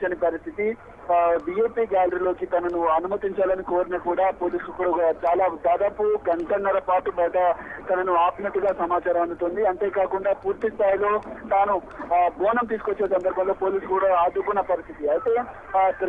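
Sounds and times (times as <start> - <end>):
man talking over telephone: 0.0 - 16.0.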